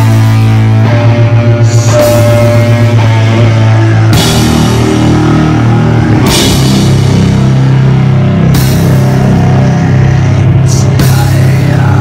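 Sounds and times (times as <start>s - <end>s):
bass holding heavy chords: 0.0s - 12.0s
distorted electric guitar: 0.0s - 12.0s
drums and cymbal crashes: 0.0s - 12.0s.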